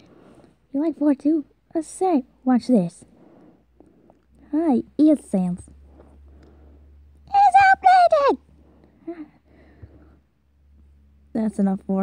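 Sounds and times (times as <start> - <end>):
steady low hum: 0.0 - 12.0
person speaking: 7.2 - 9.3.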